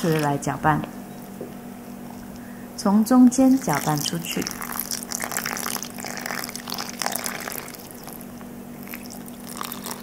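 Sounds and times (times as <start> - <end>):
liquid pouring into flour: 3.7 - 10.0.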